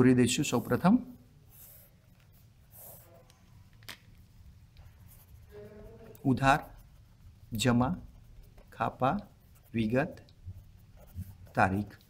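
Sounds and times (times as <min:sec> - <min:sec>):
person speaking: 0:00.0 - 0:01.8, 0:05.0 - 0:12.0
pen scratching on paper: 0:01.4 - 0:03.6, 0:04.6 - 0:12.0.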